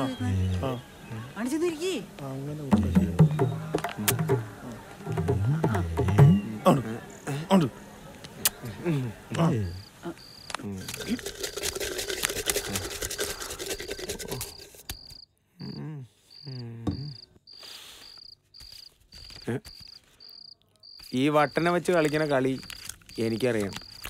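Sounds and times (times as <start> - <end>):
murmured voices: 0.0 - 11.2
cricket chirping: 9.4 - 24.0
rustling noise: 18.0 - 20.3.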